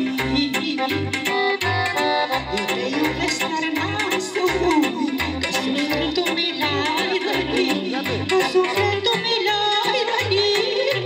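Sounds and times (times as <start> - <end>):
bass and drum beat: 0.0 - 11.0
keyboard accompaniment: 0.0 - 11.0
saxophone folk melody: 0.0 - 11.0.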